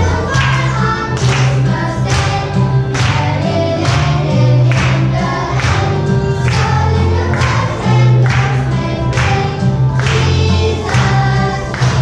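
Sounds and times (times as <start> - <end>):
children singing: 0.0 - 12.0.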